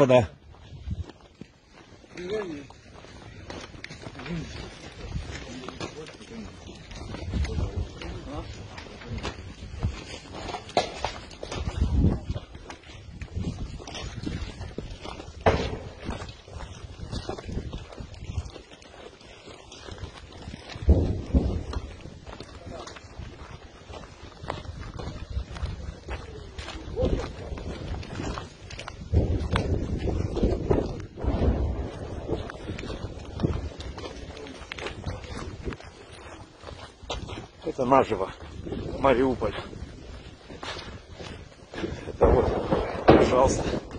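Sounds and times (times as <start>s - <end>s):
footsteps on rubble: 0.0s - 43.9s
low rumbles: 0.3s - 43.9s
sharp crack: 15.4s - 16.3s, 42.2s - 43.9s.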